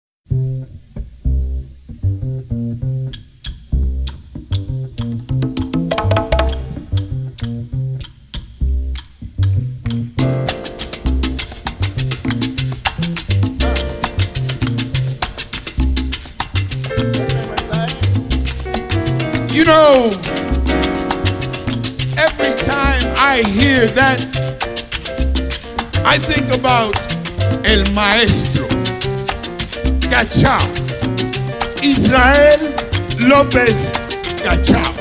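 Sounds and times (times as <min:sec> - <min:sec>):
instrumental latin music: 0:00.3 - 0:35.0
plucked bass line: 0:00.3 - 0:35.0
sharp percussion clicks: 0:03.1 - 0:35.0.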